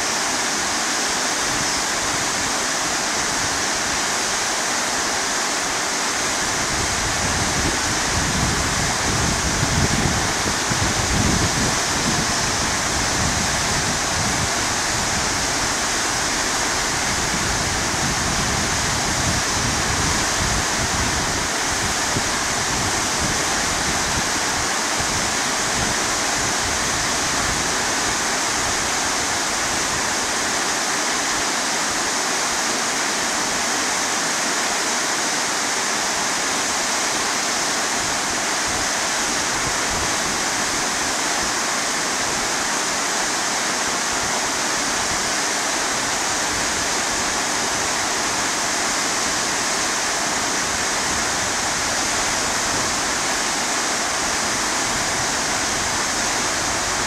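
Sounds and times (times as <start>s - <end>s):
waterfall rushing over rocks: 0.0s - 57.0s.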